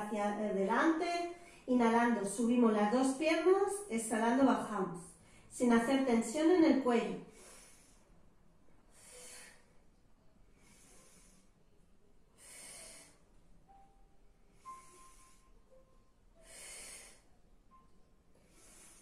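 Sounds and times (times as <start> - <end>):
woman breathing softly: 1.3 - 1.7, 5.1 - 5.6, 7.2 - 19.0.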